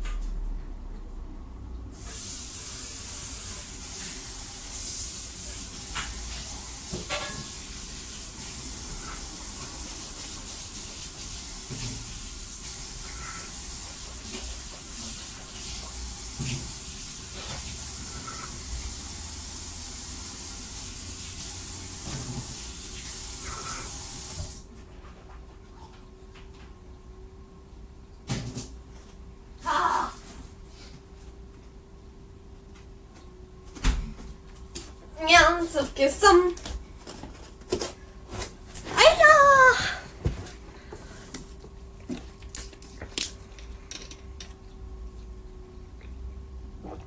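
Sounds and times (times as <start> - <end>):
water running from tap: 1.9 - 24.7.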